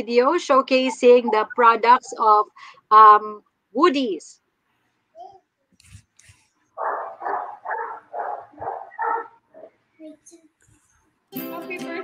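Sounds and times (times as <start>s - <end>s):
dog barking: 6.8s - 9.8s.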